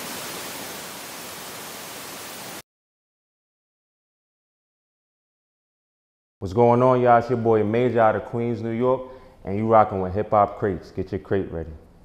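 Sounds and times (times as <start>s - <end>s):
static hiss: 0.0s - 2.6s.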